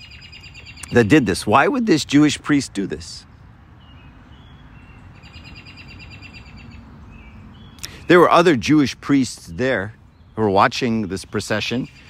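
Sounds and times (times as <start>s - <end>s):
songbird chirping and trilling: 0.0s - 12.0s.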